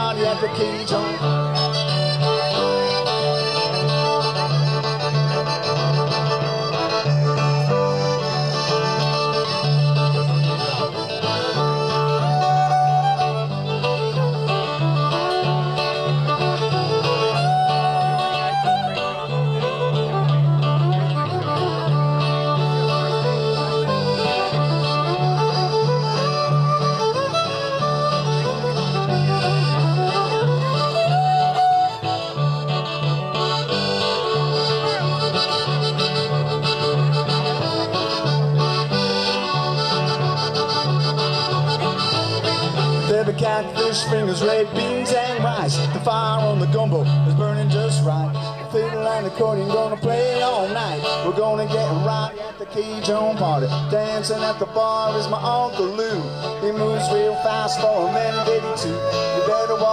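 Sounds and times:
accordion: 0.0 - 59.9
acoustic guitar: 0.0 - 59.9
electric bass: 0.0 - 59.9
fiddle: 0.0 - 59.9.

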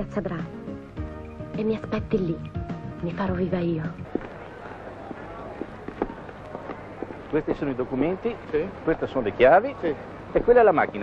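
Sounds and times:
town noise: 0.0 - 11.0.

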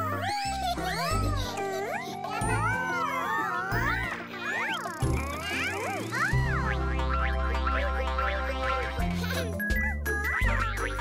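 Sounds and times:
cartoon voices gliding ooh: 0.0 - 11.0
children's background music: 0.0 - 11.0.

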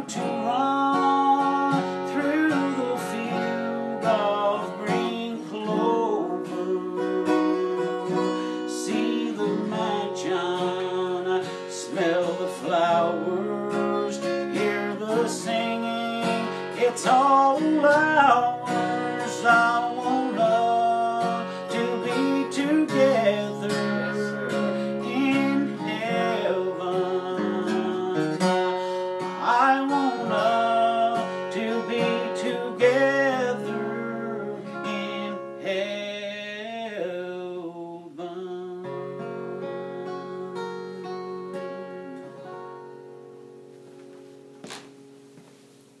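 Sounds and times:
acoustic guitar playing: 0.0 - 46.0.

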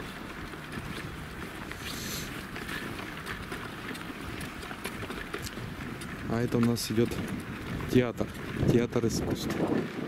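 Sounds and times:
footsteps on packed snow: 0.0 - 10.0
stroller wheels crunching on snow: 0.0 - 10.0.

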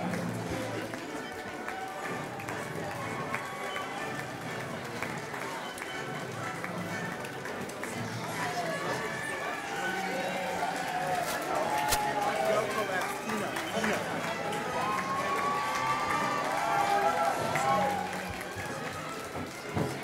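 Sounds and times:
background music: 0.0 - 20.0
crowd murmur and chatter: 0.0 - 20.0.

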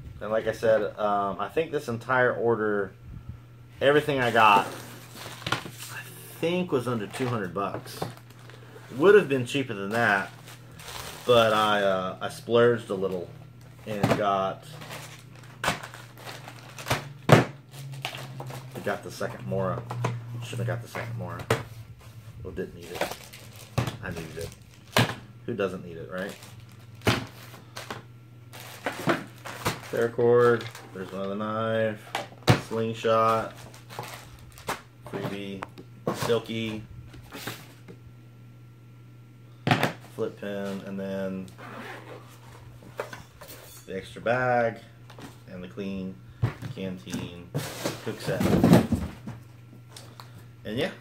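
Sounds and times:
plastic packaging crinkling: 4.2 - 6.0, 6.8 - 11.8, 14.7 - 19.4, 22.7 - 25.2, 26.1 - 31.4, 33.2 - 35.4.

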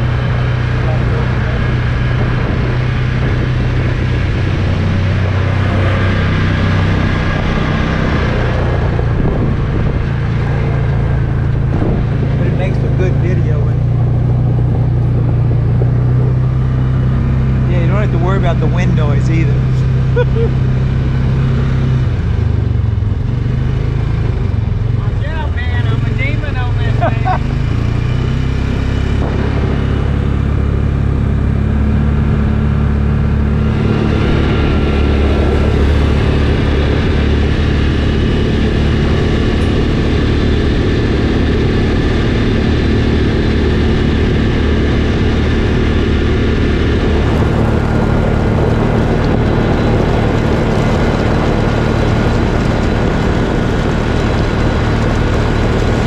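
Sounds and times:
utility vehicle engine running: 0.0 - 56.0.

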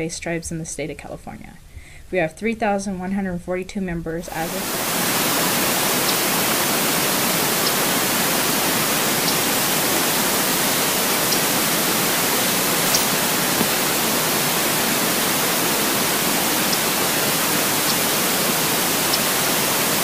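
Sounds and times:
river water rushing: 4.3 - 20.0.

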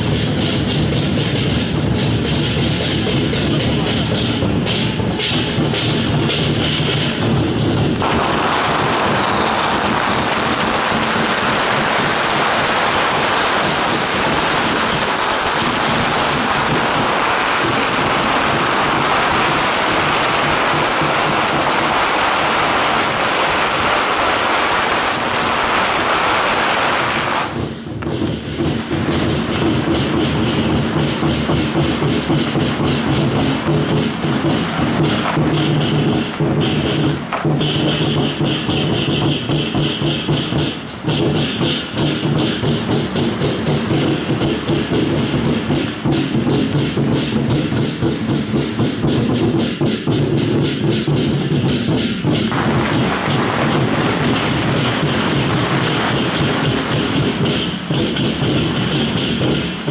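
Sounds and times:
drums and cymbals playing: 0.0 - 59.9
firecrackers crackling: 0.0 - 59.9.

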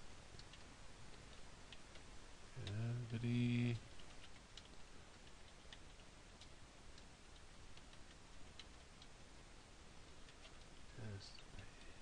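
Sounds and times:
typing on keyboard: 3.8 - 9.1.

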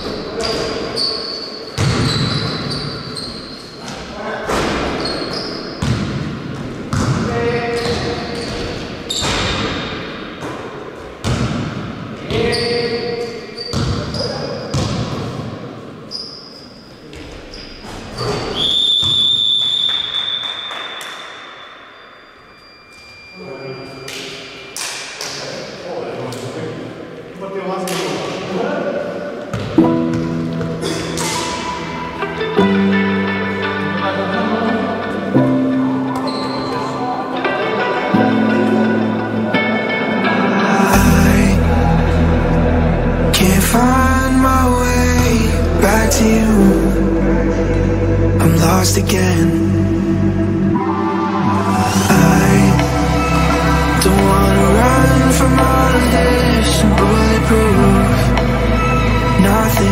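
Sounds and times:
players' voices echoing: 0.0 - 16.1, 23.3 - 59.9
shoe squeaks: 0.4 - 4.0, 4.9 - 6.0, 7.6 - 9.6, 12.3 - 15.0, 16.0 - 21.2, 36.2 - 37.1
basketball bouncing on court: 1.8 - 2.9, 5.8 - 9.8, 11.2 - 12.6, 13.7 - 15.4, 29.5 - 31.4
music: 29.8 - 59.9.

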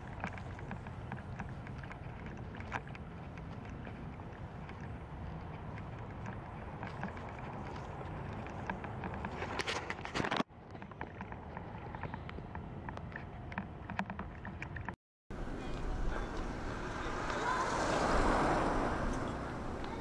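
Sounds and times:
city street rush: 0.0 - 10.2, 15.3 - 20.0.

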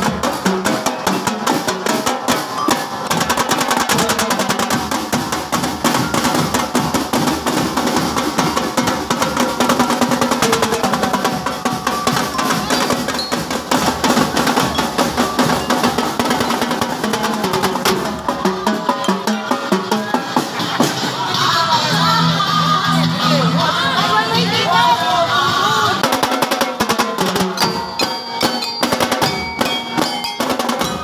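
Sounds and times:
snare drumming: 0.0 - 21.0, 26.0 - 31.0
bell lyres ringing melody: 8.7 - 17.0, 27.5 - 31.0.

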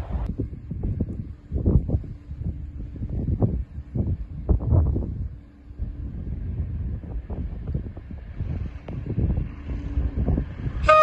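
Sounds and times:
diesel locomotive rumble: 0.0 - 11.0
wind buffeting microphone: 0.0 - 11.0
locomotive horn: 10.8 - 11.0.

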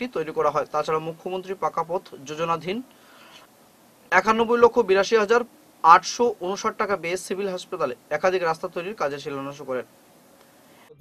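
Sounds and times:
man speaking: 0.0 - 2.9, 4.1 - 9.9
low background noise: 0.0 - 11.0.

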